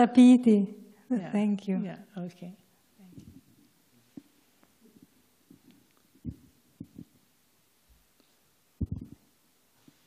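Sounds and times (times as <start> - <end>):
soft low thumps: 3.1 - 7.2, 8.8 - 9.2.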